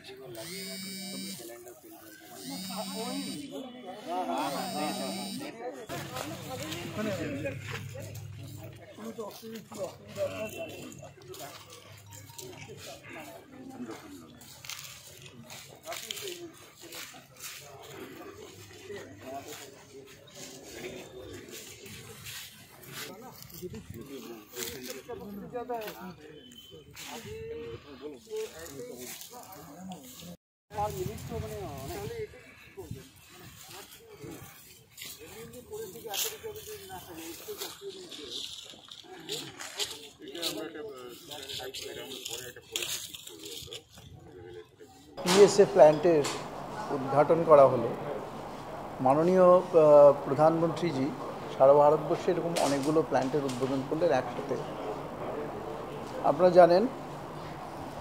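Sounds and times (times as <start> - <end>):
people talking: 0.0 - 58.0.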